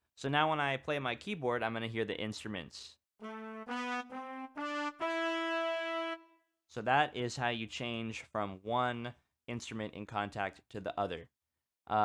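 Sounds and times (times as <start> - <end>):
brass section short notes: 3.2 - 6.4.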